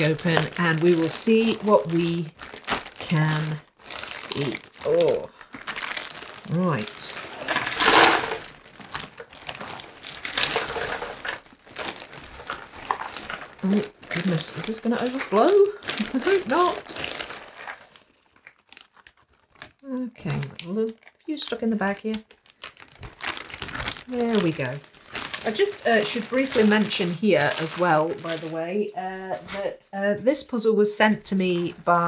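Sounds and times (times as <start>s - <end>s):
jigsaw pieces pouring and rattling: 0.0s - 17.6s, 22.3s - 28.6s
plastic bag crinkling: 0.0s - 29.6s, 31.0s - 32.0s.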